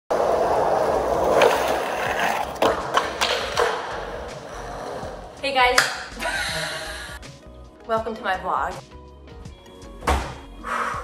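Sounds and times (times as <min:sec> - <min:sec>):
skateboard clacks: 0:00.1 - 0:05.0
skateboard wheels rolling on concrete: 0:00.1 - 0:06.2.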